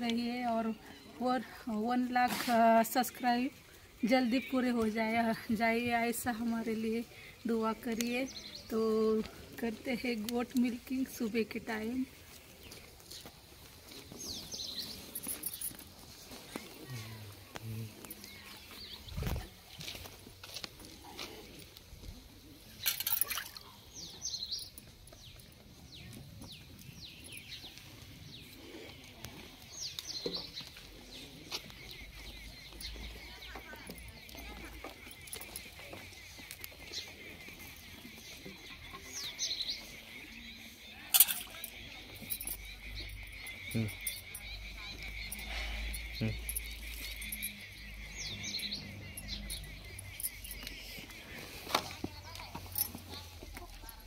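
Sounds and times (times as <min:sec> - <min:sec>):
bird chirping: 0:22.7 - 0:54.0.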